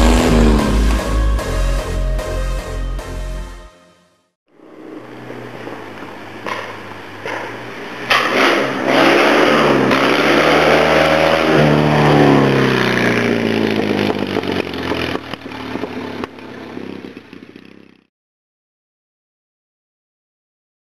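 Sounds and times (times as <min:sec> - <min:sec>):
rally car engine revving: 0:00.0 - 0:01.8, 0:04.8 - 0:16.8.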